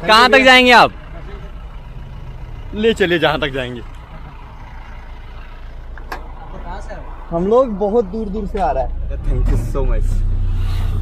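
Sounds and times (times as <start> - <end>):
pickup truck engine idling: 0.0 - 11.0.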